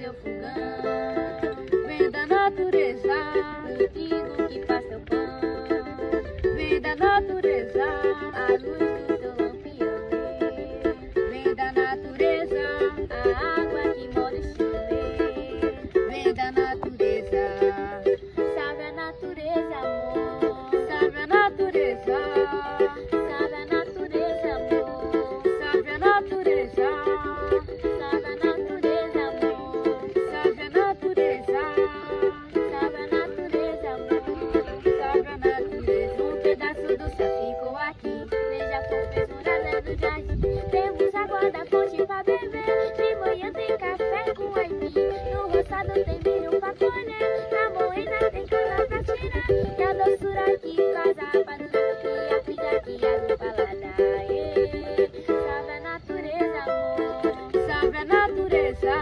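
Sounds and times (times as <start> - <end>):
acoustic string instrument strumming: 0.0 - 59.0.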